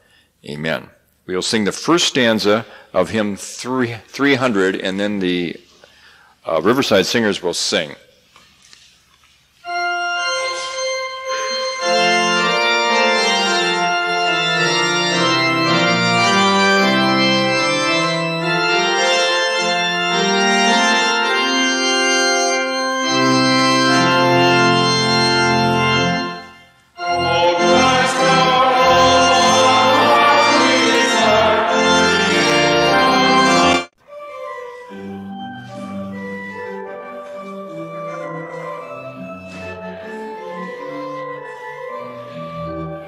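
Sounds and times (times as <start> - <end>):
church organ playing a hymn: 9.6 - 43.0.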